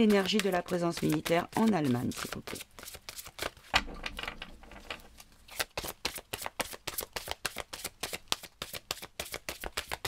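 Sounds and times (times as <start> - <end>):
cards being shuffled: 0.0 - 3.7, 4.8 - 10.0.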